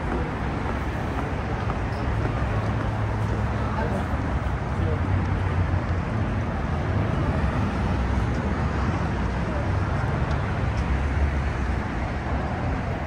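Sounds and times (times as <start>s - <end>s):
road traffic: 0.0s - 13.0s.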